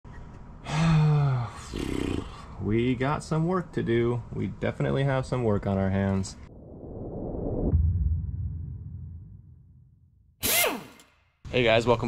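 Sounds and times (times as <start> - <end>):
breathy exhale: 0.6 - 2.6
man groaning: 0.7 - 2.4.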